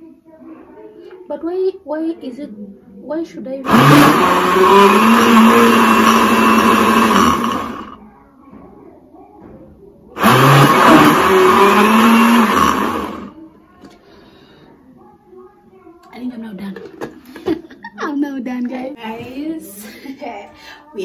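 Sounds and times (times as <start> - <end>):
blender motor running: 3.7 - 8.0, 10.2 - 13.3.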